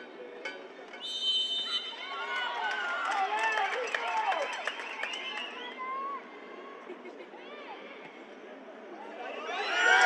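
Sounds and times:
crowd shouting and cheering: 0:01.3 - 0:07.8, 0:09.0 - 0:10.0.

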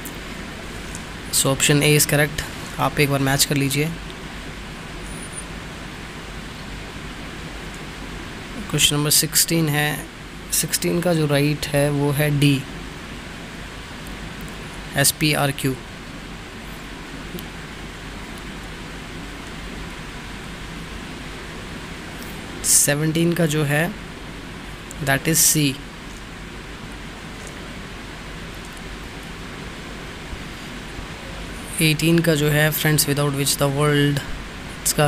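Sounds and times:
low hum: 0:00.0 - 0:35.0
steady background hiss: 0:00.0 - 0:35.0
faint high tone: 0:05.0 - 0:05.5.

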